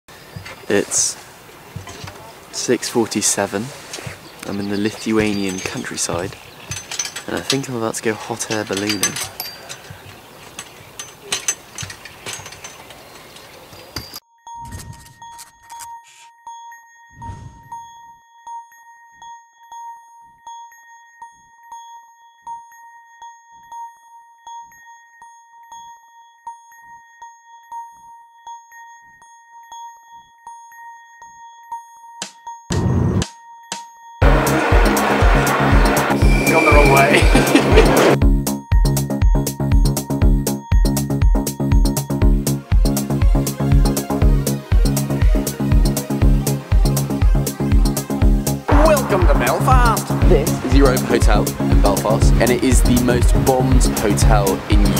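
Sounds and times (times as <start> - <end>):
intro jingle with bell-like tone: 34.2 - 38.2, 48.7 - 54.9
loud deep beat: 34.2 - 38.5, 47.8 - 54.9
electronic music: 34.2 - 38.7, 41.4 - 54.9
faint held tone: 36.1 - 38.2.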